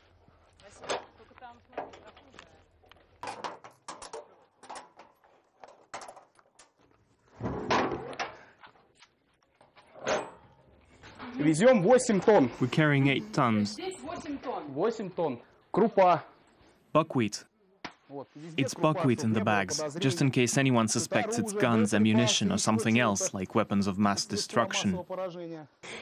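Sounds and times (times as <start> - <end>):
person speaking: 11.2 - 14.7, 17.0 - 17.5, 18.2 - 25.1.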